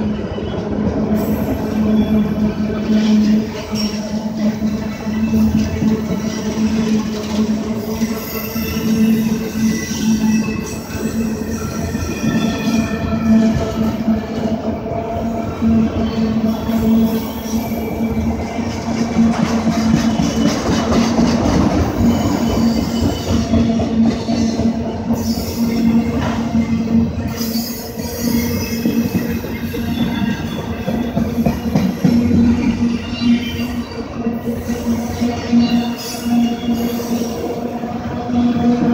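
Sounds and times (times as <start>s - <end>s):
train wheels rumbling on rail: 0.0s - 38.9s
high-pitched wheel squeals: 1.2s - 14.0s, 22.0s - 23.8s, 25.2s - 37.5s.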